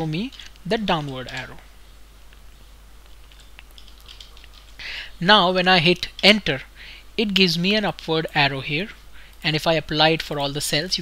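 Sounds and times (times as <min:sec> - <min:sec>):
keyboard clicks: 0:00.0 - 0:01.6, 0:03.0 - 0:04.9
low electrical hum: 0:00.0 - 0:11.0.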